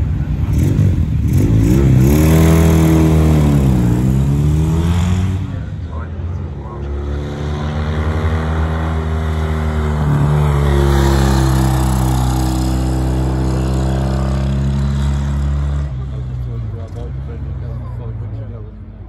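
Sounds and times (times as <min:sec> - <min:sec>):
racing engine at high revs: 0:00.0 - 0:19.0.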